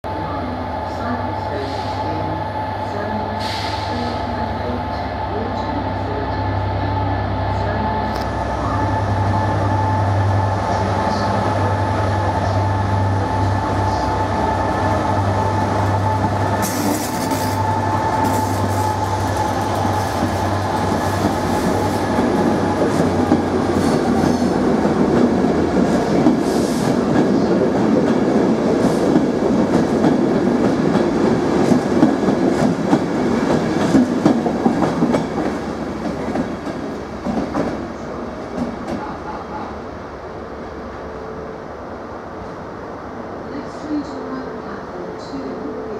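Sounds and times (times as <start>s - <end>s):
diesel locomotive engine drone: 0.0s - 45.9s.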